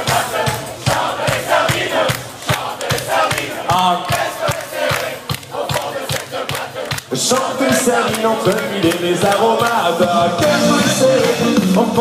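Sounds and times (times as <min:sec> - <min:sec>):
crowd singing and shouting: 0:00.0 - 0:12.0
live band fast beat: 0:00.0 - 0:12.0.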